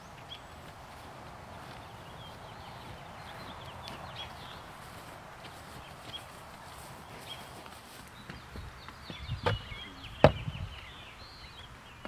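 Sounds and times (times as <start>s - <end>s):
sharp hoof knocks: 8.2s - 10.5s
hoof thuds on wood: 8.2s - 10.8s.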